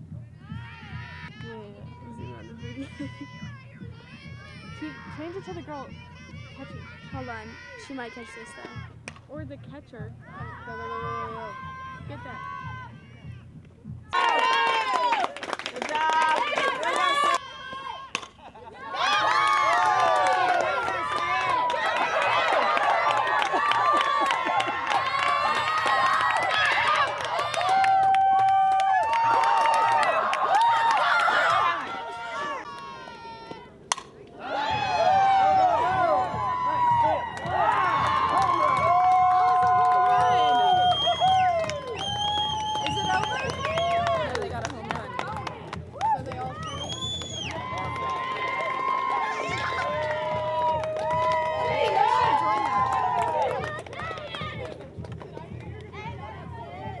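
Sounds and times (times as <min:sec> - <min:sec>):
players shouting and cheering: 0:00.0 - 0:57.0.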